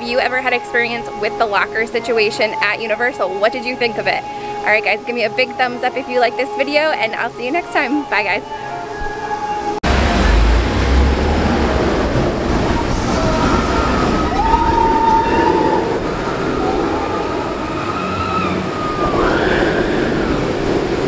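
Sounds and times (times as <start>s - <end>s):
roller coaster train roaring on track: 9.9s - 21.0s.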